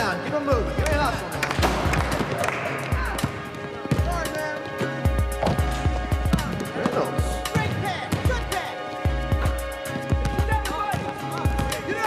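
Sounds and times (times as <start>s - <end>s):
hip-hop song with heavy beat: 0.0s - 12.0s.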